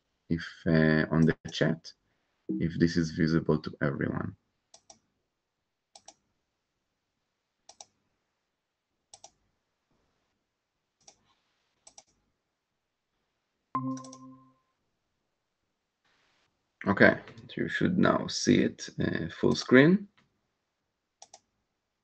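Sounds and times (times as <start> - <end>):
computer mouse clicks: 4.7 - 5.0, 5.9 - 6.2, 7.7 - 8.0, 9.1 - 9.4, 11.0 - 12.2, 21.2 - 21.5
electronic notification chime: 13.8 - 14.5.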